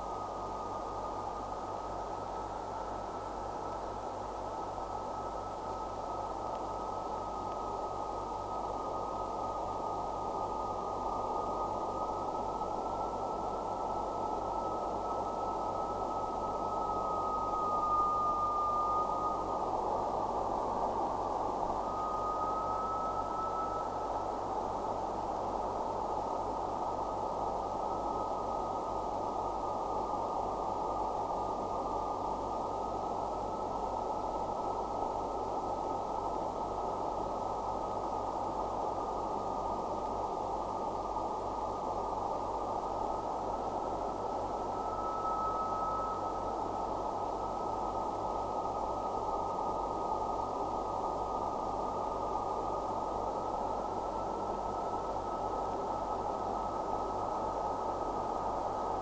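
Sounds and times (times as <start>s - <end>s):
hiss of filtered noise: 0.0s - 59.0s.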